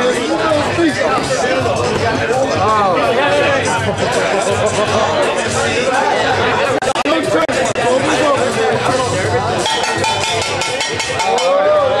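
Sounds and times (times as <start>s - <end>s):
spectators yelling and shouting: 0.0s - 12.0s.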